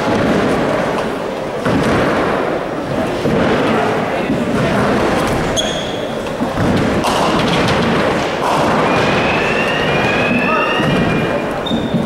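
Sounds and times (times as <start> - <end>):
bowling balls rolling: 0.0 - 12.0
sharp knock: 6.5 - 8.8.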